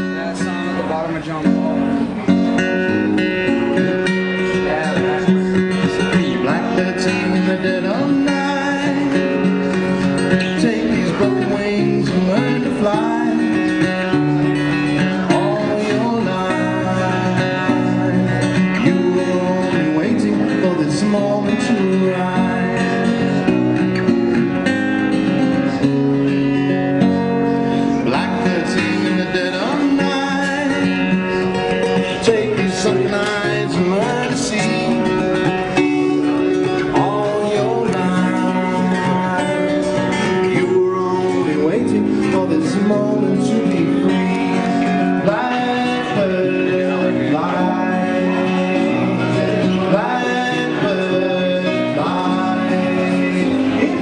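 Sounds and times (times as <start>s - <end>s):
acoustic guitar music: 0.0s - 54.0s.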